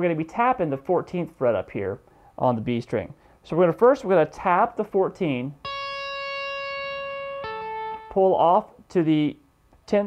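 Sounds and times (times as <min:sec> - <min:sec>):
electric guitar note pull-off: 0:05.6 - 0:08.2.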